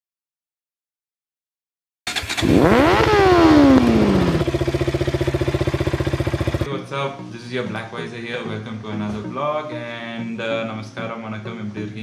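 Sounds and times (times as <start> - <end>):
motorcycle engine revving and idling: 2.1 - 6.7.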